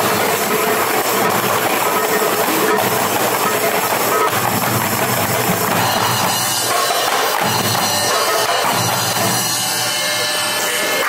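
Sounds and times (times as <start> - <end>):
hand drum ensemble fast rhythm: 0.0 - 11.0.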